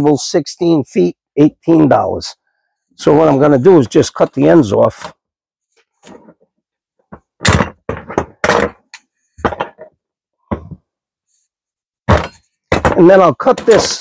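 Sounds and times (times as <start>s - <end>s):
clamps knocking on wooden workbench: 7.1s - 9.9s.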